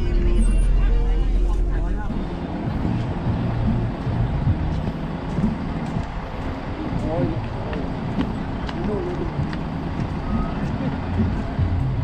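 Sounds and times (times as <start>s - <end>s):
people talking: 0.0s - 2.4s, 6.8s - 9.5s
bus engine rumble: 0.0s - 12.0s.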